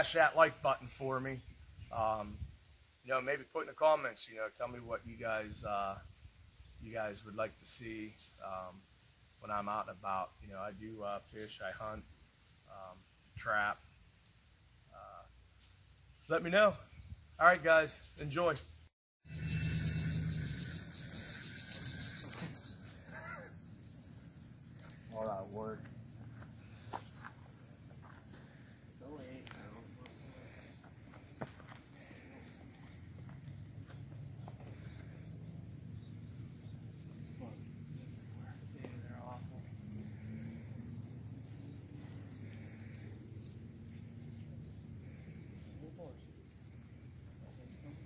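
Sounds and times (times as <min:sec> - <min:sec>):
steady hiss and hum: 0:00.0 - 0:16.8
high insect tones: 0:19.2 - 0:48.0.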